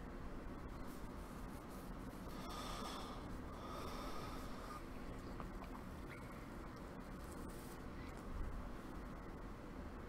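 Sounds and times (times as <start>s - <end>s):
man breathing through nose: 2.3s - 4.9s.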